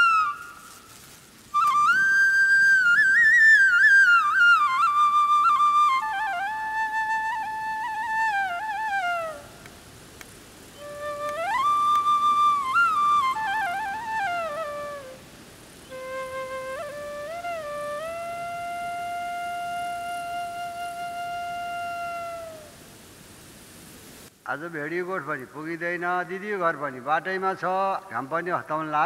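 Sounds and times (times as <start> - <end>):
solo flute: 0.0 - 9.9, 10.6 - 23.1
soft steady hiss: 0.0 - 29.0
long held music note: 10.8 - 22.7.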